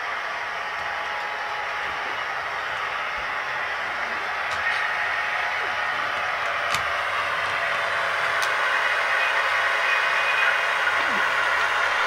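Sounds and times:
model locomotive running: 0.0s - 12.0s.

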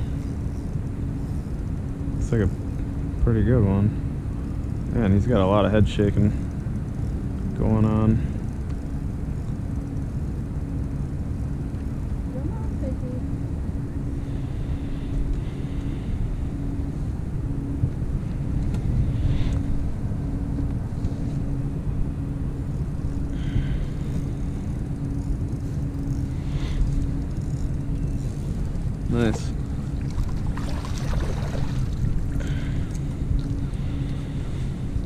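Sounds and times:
machine hum with low rumble: 0.0s - 35.0s.

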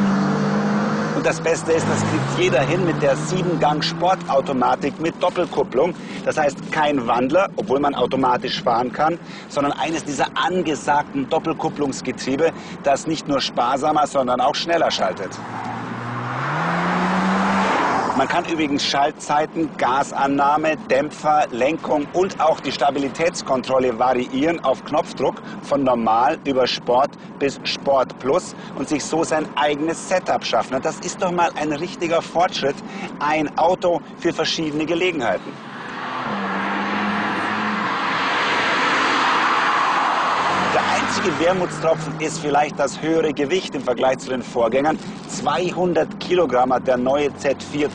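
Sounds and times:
car engine accelerating: 0.0s - 5.6s, 15.3s - 18.5s, 35.5s - 42.5s
road and wind noise: 0.0s - 47.9s.

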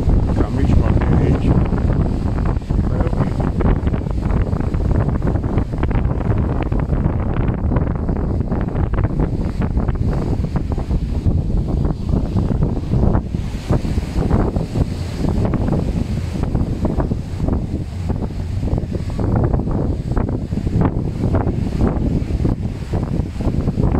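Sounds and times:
wind buffeting microphone: 0.0s - 23.9s.

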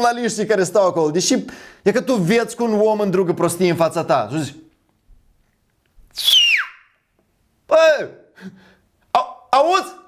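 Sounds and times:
person whistling falling note: 6.1s - 7.0s.

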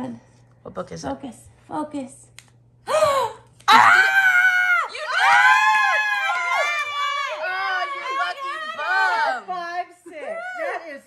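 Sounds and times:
woman squealing: 2.9s - 9.3s.

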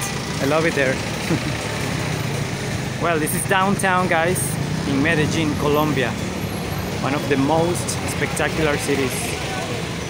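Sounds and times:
small motorcycle engine running: 0.0s - 2.4s
vehicles idling: 0.0s - 10.0s.

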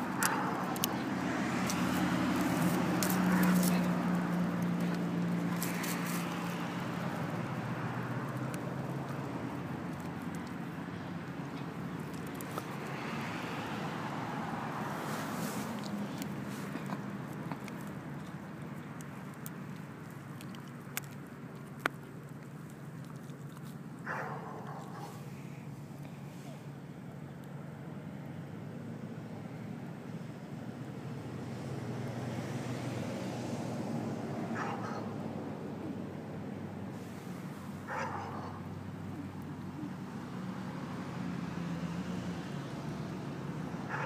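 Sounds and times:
dog chewing stick crack: 0.0s - 13.5s, 15.3s - 25.2s
vehicle engine low hum: 0.0s - 44.0s.

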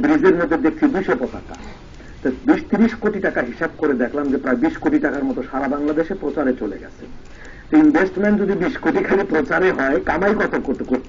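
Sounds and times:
man preaching: 0.0s - 11.0s.

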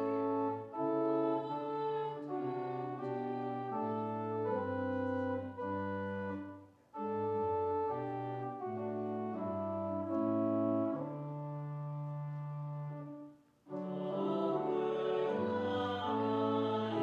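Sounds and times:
organ playing a hymn: 0.0s - 17.0s.

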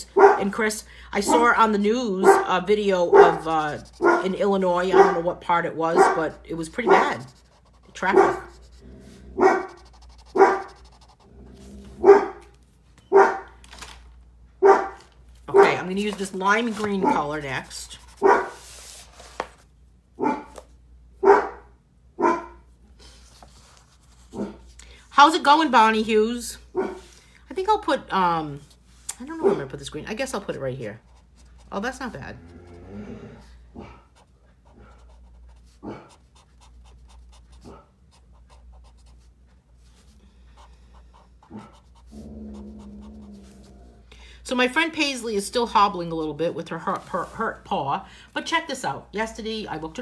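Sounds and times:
dog barking: 0.0s - 0.5s, 2.2s - 5.3s, 5.9s - 7.3s, 8.0s - 8.6s, 9.4s - 10.8s, 12.0s - 12.5s, 13.1s - 13.5s, 14.6s - 15.8s, 18.2s - 18.6s, 20.2s - 20.6s, 21.2s - 22.6s, 26.8s - 27.0s, 35.8s - 36.2s
low steady hum: 0.0s - 50.0s
marker scratching on paper: 2.3s - 8.8s, 9.5s - 11.3s, 15.6s - 19.4s, 34.2s - 42.1s
dog panting: 40.5s - 43.5s.

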